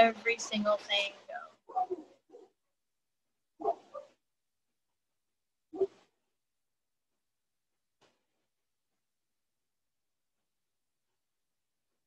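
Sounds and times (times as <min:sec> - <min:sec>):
dog barking: 0:01.7 - 0:02.6, 0:03.6 - 0:04.2, 0:05.7 - 0:06.0.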